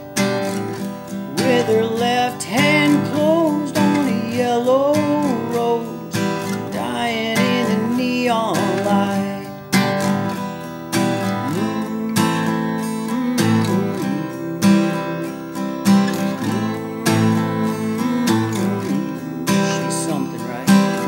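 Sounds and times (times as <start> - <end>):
acoustic guitar strumming: 0.0 - 21.0
man singing: 0.2 - 9.9, 11.1 - 21.0.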